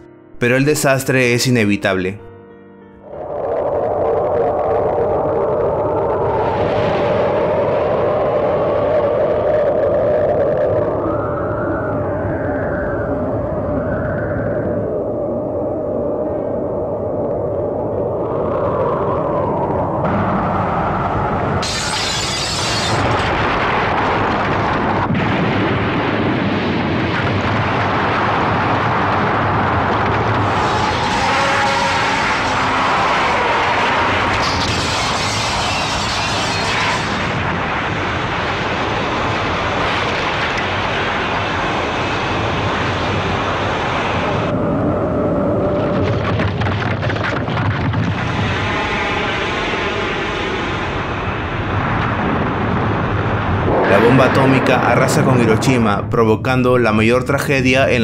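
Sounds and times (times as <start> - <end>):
soundtrack music: 0.0 - 3.3
loud explosion noise: 20.0 - 44.6, 45.7 - 56.2.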